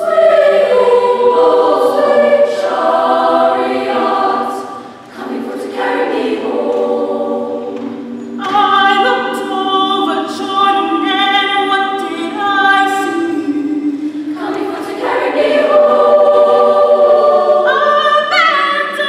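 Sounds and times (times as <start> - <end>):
women's choir singing: 0.0 - 19.0.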